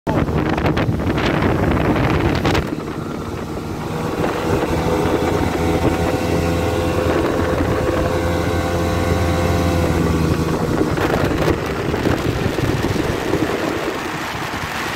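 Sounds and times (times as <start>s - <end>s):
outboard motor droning: 0.1s - 14.9s
rush of wind and water: 0.1s - 14.9s.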